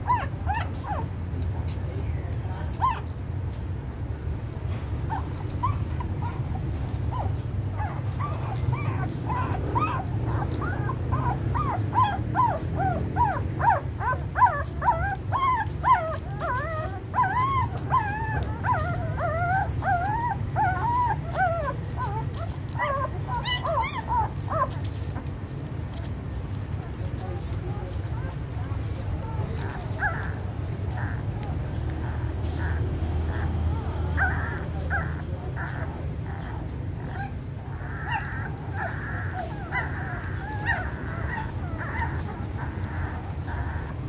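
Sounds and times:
puppies whimpering and squeaking: 0:00.0 - 0:44.0.

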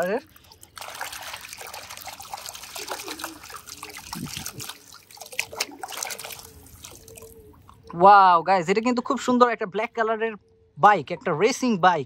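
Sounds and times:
water splashing and sloshing: 0:00.0 - 0:08.1
water trickling and dripping: 0:00.0 - 0:08.1.

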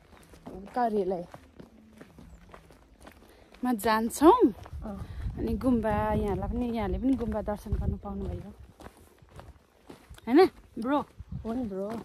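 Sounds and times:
footsteps on a path: 0:00.0 - 0:12.0
woman's voice: 0:00.4 - 0:01.4, 0:03.6 - 0:08.7, 0:10.2 - 0:12.0.

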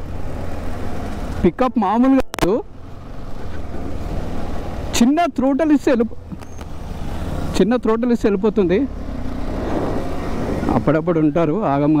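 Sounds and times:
man talking: 0:01.4 - 0:02.7, 0:05.0 - 0:06.2, 0:07.6 - 0:08.9, 0:10.7 - 0:12.0
rushing wind noise: 0:09.2 - 0:10.9.

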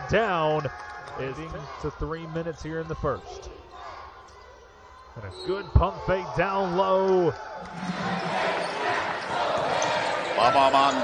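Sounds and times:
arena crowd noise: 0:00.0 - 0:11.0
basketball play on court: 0:00.2 - 0:11.0.

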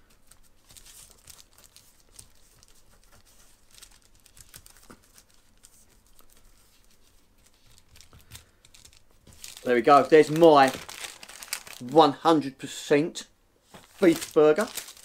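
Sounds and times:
wax paper crinkling: 0:00.0 - 0:12.2, 0:13.7 - 0:15.0.

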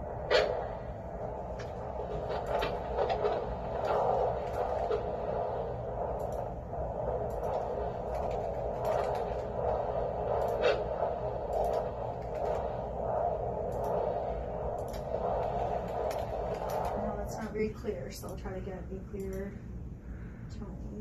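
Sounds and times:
doppler whooshing static: 0:00.0 - 0:18.9
scratchy clicks: 0:01.5 - 0:19.5.

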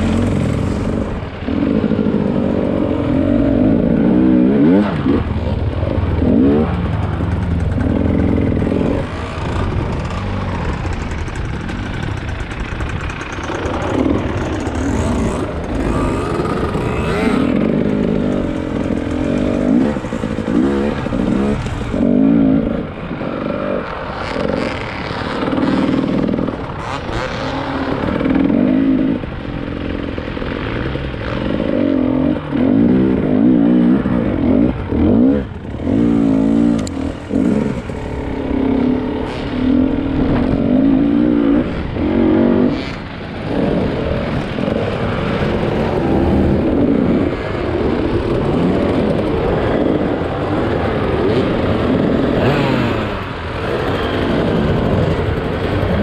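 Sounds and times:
motorcycle two-stroke engine revving: 0:00.0 - 0:56.0.

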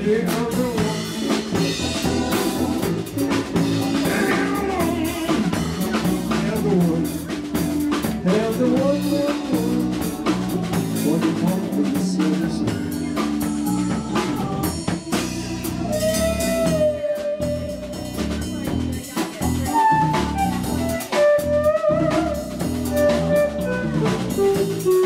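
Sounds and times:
long held lead notes: 0:00.0 - 0:18.3
drum kit: 0:00.0 - 0:25.0
electric bass: 0:00.0 - 0:25.0
electric guitar: 0:00.0 - 0:25.0
stage organ: 0:00.0 - 0:25.0.

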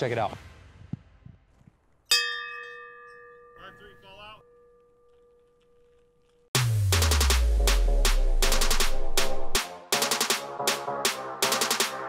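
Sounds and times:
struck bell chime ringing: 0:02.1 - 0:05.9.

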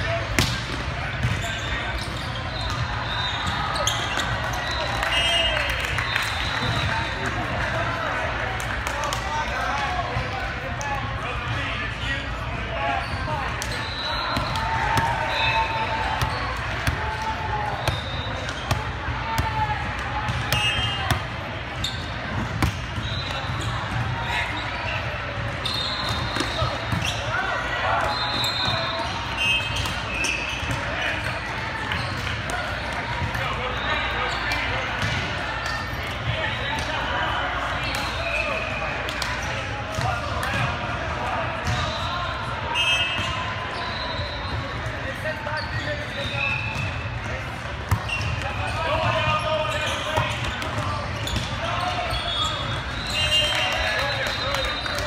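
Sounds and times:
sneakers squeaking on court: 0:00.3 - 0:04.8, 0:11.9 - 0:17.2, 0:20.2 - 0:36.8, 0:42.8 - 0:53.9.

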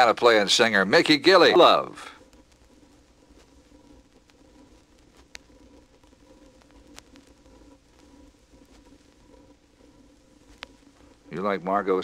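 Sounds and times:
faint hum and hiss: 0:00.0 - 0:12.0.

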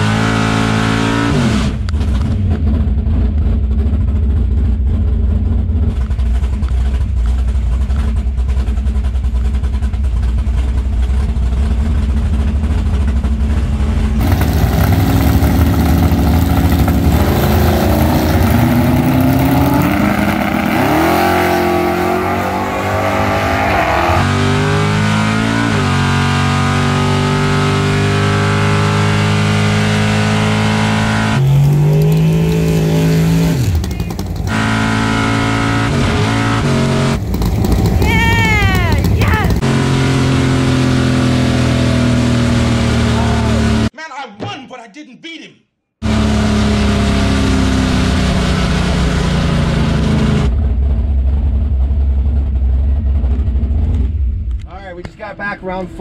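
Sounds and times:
car engine idling and revving: 0:00.0 - 0:43.9, 0:46.0 - 0:56.0.

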